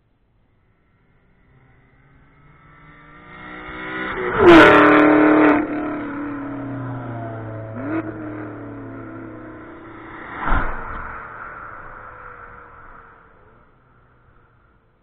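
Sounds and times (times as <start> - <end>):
race car passing by: 0.6 - 14.6.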